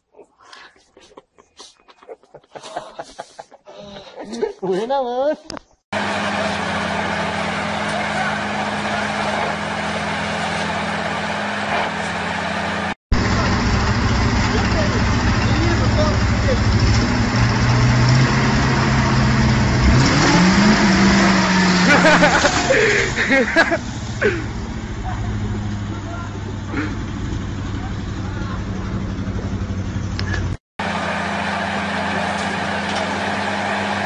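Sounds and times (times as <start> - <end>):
fire truck engine revving: 6.0 - 34.0.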